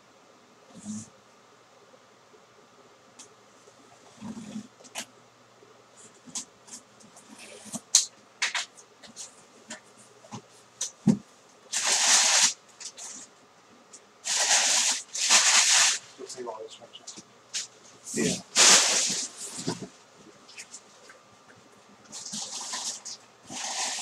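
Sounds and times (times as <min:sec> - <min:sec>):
packing paper rustling: 0:14.2 - 0:16.1, 0:17.6 - 0:19.9
crinkling plastic wrap: 0:14.2 - 0:16.2.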